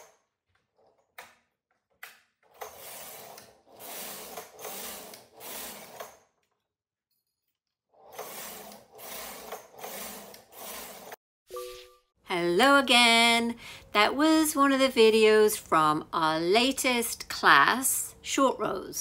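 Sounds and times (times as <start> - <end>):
short musical tone: 11.5 - 12.2.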